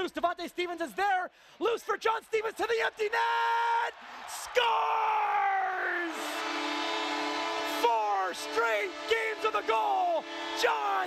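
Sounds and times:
crowd cheering: 1.9 - 11.0
goal horn blast: 6.0 - 11.0
announcer speaking: 7.7 - 11.0.

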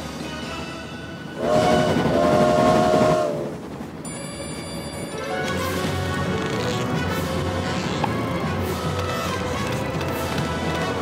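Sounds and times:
passing train rushing: 0.0 - 11.0
train horn: 0.2 - 3.5, 5.1 - 11.0
quiet orchestral music: 5.0 - 11.0.

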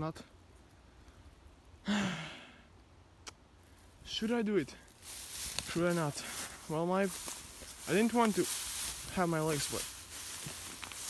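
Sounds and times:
man sighing: 1.8 - 2.7.

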